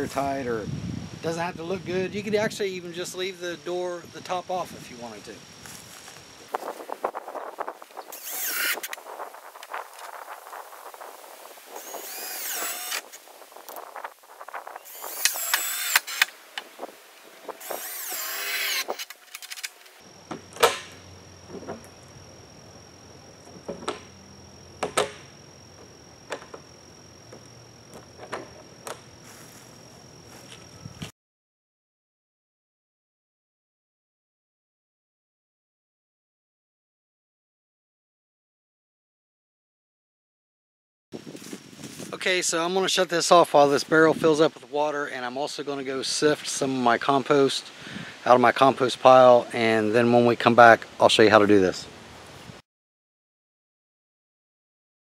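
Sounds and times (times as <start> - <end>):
screw gun driving screws: 8.1 - 9.0, 11.8 - 13.2, 14.9 - 16.4, 17.6 - 19.7
sharp clicks and knocks: 23.4 - 24.1, 24.8 - 26.7.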